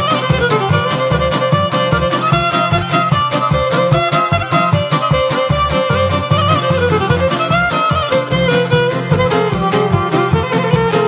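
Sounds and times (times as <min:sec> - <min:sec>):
plucked string accompaniment: 0:00.0 - 0:11.0
steady beat and bass: 0:00.0 - 0:11.0
violin melody: 0:00.0 - 0:11.0.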